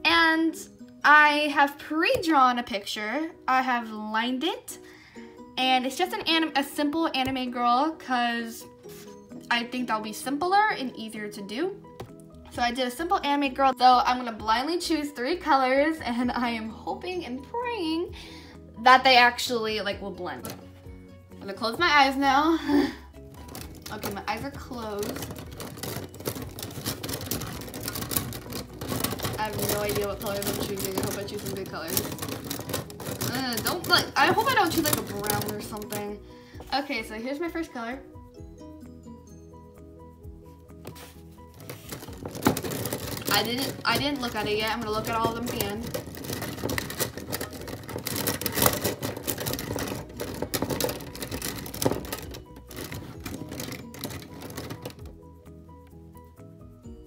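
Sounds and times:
plastic pens clattering: 20.3s - 20.6s, 22.7s - 36.2s, 40.9s - 55.3s.

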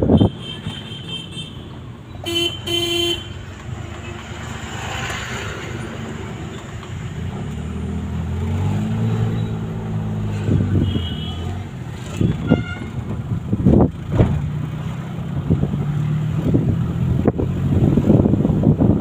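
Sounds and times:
vehicle engine and road noise: 0.0s - 19.0s.

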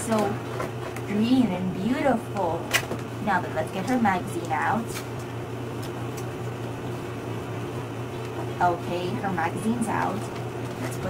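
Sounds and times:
steady background hum: 0.0s - 11.0s
paper and cardboard handling: 9.7s - 11.0s.

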